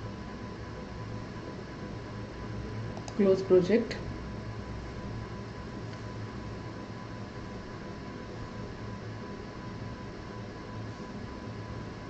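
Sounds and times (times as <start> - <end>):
faint steady whine: 0.0 - 12.0.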